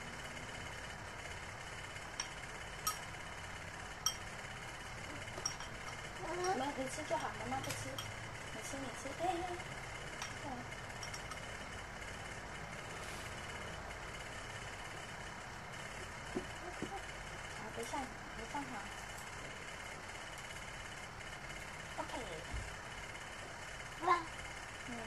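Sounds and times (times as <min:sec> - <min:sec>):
electric fan running: 0:00.0 - 0:25.0
spoon clicking on ceramic bowl: 0:02.2 - 0:03.1, 0:05.4 - 0:08.2, 0:11.0 - 0:11.4.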